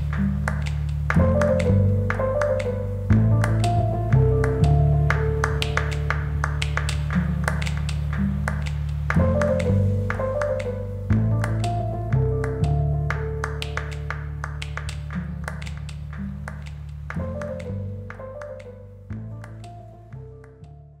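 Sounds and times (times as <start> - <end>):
low bass chords: 0.0 - 21.0.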